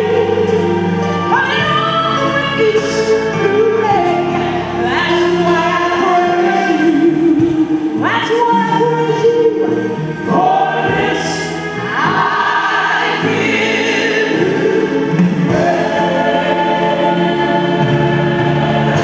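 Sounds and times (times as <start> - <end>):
gospel choir singing: 0.0 - 19.0
instrumental accompaniment: 0.0 - 19.0.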